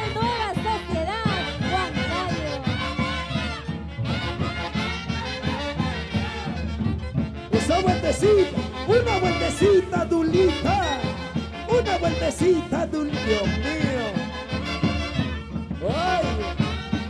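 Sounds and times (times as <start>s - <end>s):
saxophones and brass dance music: 0.0s - 17.0s.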